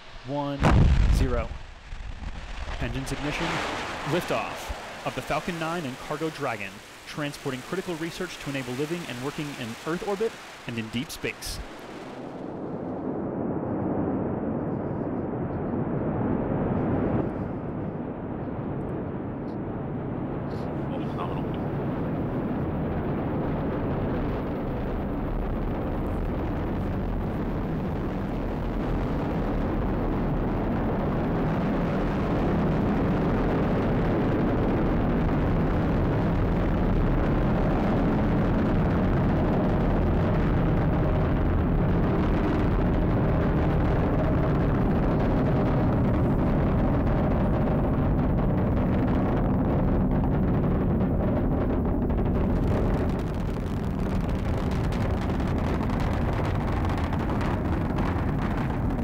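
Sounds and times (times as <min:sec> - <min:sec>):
rocket engines rumbling: 0:00.0 - 0:59.0.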